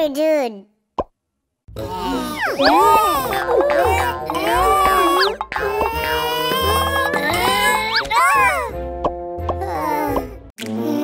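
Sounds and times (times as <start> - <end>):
cartoon voices: 1.8 - 8.8
cartoon music: 1.8 - 10.4
squeaky cartoon voice sliding down: 2.4 - 3.2.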